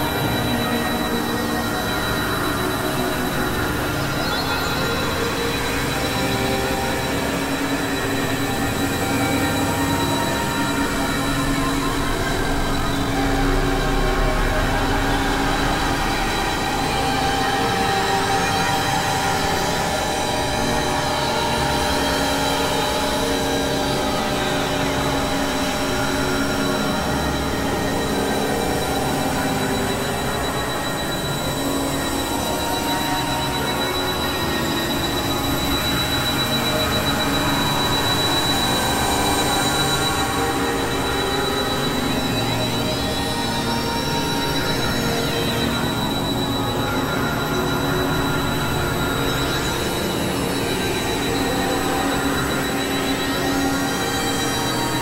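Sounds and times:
constant high whine: 0.0s - 55.0s.

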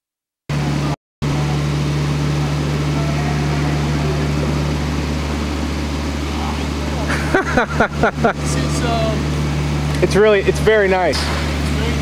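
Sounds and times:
low electrical hum: 0.5s - 12.0s.

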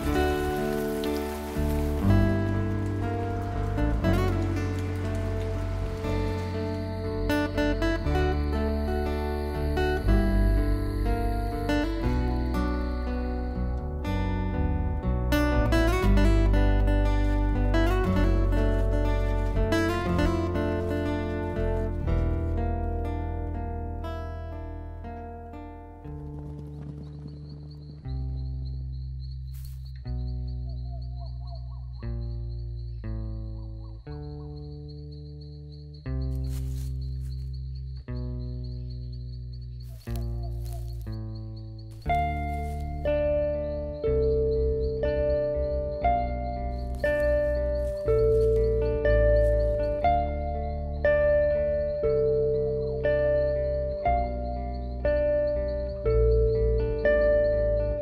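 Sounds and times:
rain falling: 0.0s - 10.0s
film score of held notes: 0.0s - 58.0s.

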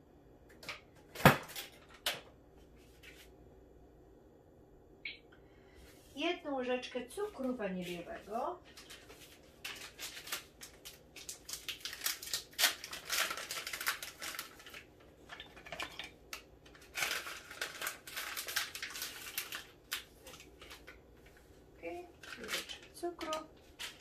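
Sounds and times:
paper packet crinkling: 7.4s - 21.4s, 22.1s - 24.0s.

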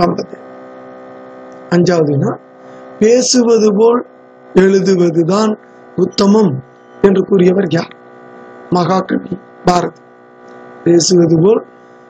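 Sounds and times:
person speaking: 0.0s - 0.4s, 1.7s - 2.4s, 3.0s - 8.0s, 8.7s - 10.0s, 10.8s - 11.7s
electrical mains hum: 0.0s - 12.0s.

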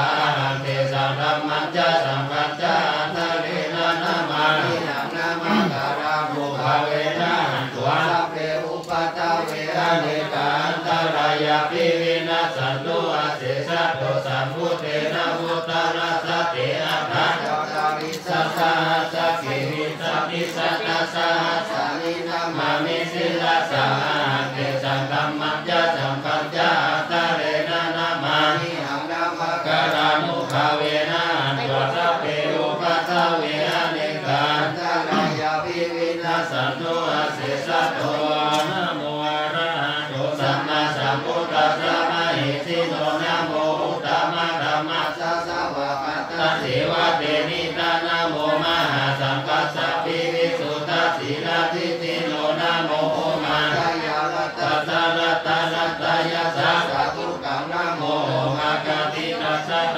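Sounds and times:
monks chanting: 0.0s - 59.9s.

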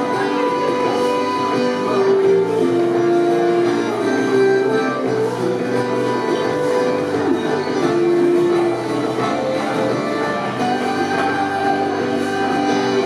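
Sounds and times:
bass guitar: 0.0s - 13.0s
button accordion: 0.0s - 13.0s
flute: 0.0s - 13.0s
guitar: 0.0s - 13.0s.

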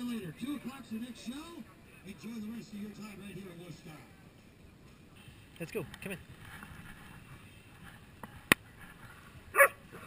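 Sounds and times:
dog barking: 9.5s - 10.0s.

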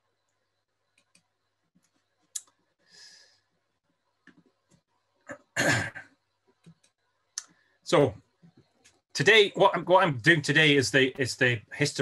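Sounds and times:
computer mouse clicks: 0.3s - 2.6s, 6.5s - 7.6s.

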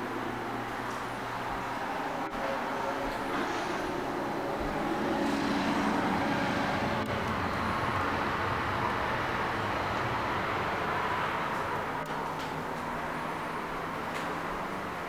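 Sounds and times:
road traffic rumble: 0.0s - 15.0s.

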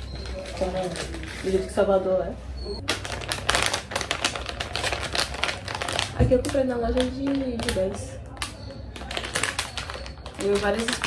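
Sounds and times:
plastic packaging crinkling: 0.0s - 1.8s, 2.8s - 11.0s.

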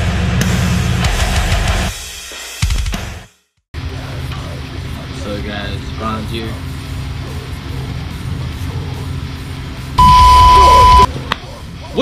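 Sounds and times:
loud electronic beep: 10.0s - 11.1s.

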